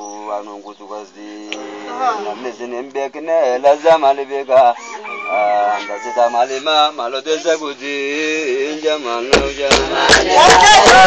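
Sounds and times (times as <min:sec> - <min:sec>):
voices chanting: 0:00.0 - 0:11.0.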